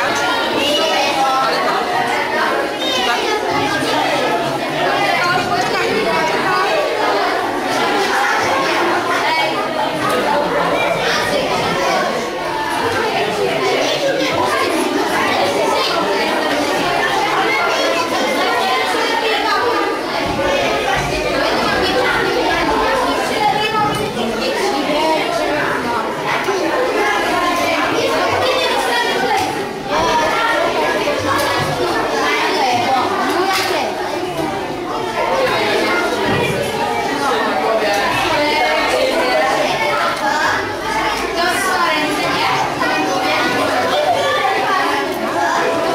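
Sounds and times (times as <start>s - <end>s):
children chattering: 0.0s - 45.9s.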